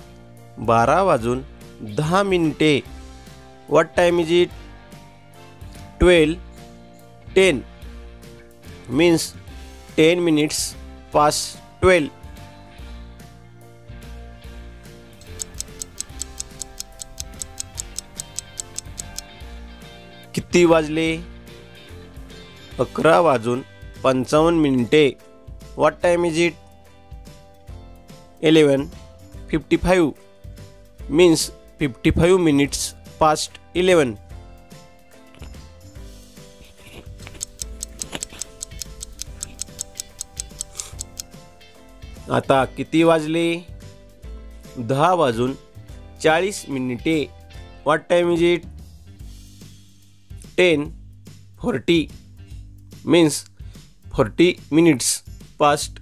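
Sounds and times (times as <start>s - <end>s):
background guitar music: 0.0s - 49.7s
clock ticking: 15.2s - 19.3s, 37.2s - 41.3s.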